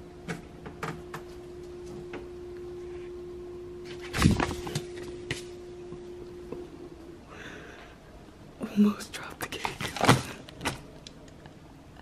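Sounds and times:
person whispering: 0:08.6 - 0:09.8.

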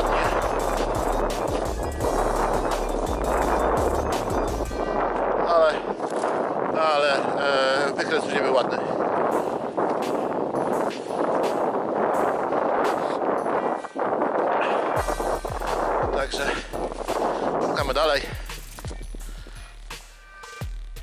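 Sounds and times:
footsteps crunching frozen ground: 0:00.0 - 0:06.8, 0:09.0 - 0:20.3
wind buffeting microphone: 0:00.0 - 0:19.6.

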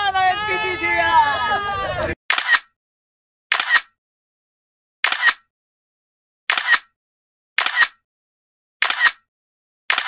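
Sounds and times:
crowd voices: 0:00.0 - 0:02.2
camera shutter double click: 0:02.3 - 0:02.8, 0:03.5 - 0:04.0, 0:05.0 - 0:05.5, 0:06.5 - 0:07.0, 0:07.6 - 0:08.0, 0:08.8 - 0:09.3.

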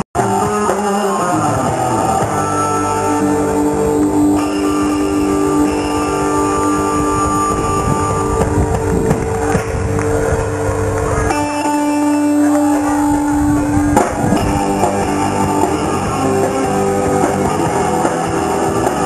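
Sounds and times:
bass: 0:00.0 - 0:19.0
drums: 0:00.0 - 0:19.0
electric guitar sustained notes: 0:00.0 - 0:19.0.

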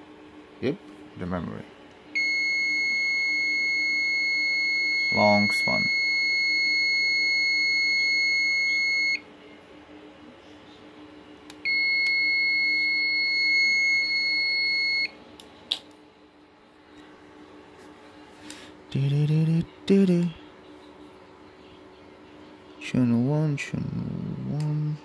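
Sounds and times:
long high-pitched beeps: 0:02.2 - 0:09.2, 0:11.7 - 0:15.1.

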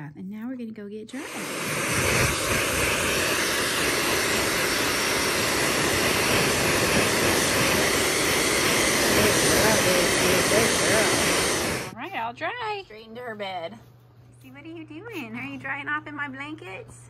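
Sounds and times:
hair dryer blowing: 0:01.1 - 0:12.0.

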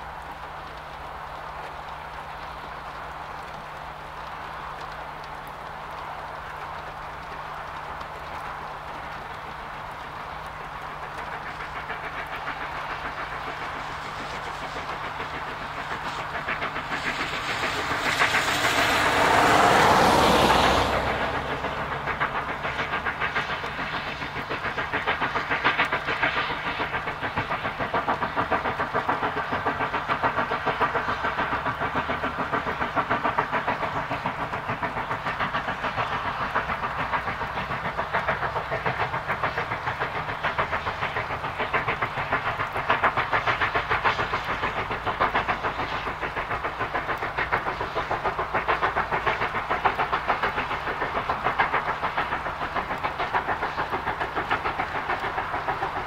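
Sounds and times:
steam locomotive exhaust beats: 0:00.0 - 0:56.0.

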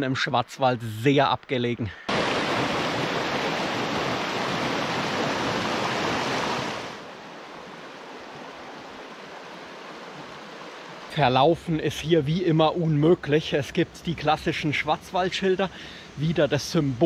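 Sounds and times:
stream rushing over rocks: 0:02.1 - 0:13.6.

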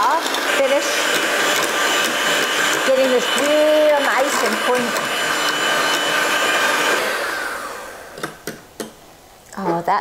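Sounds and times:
electric hand mixer whining: 0:00.0 - 0:08.7.

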